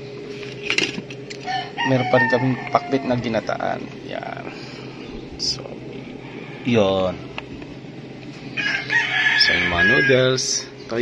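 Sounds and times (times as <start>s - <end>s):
rooster crowing: 1.4s - 3.6s, 8.5s - 10.7s.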